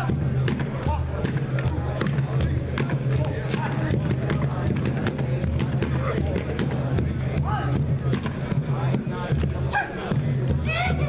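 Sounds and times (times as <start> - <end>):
sharp percussive beats: 0.0 - 11.0.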